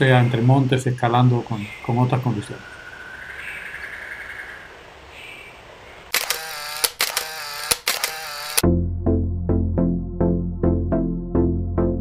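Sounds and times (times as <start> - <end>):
sharp clicks: 6.1 - 8.6
synthesizer music: 8.6 - 12.0.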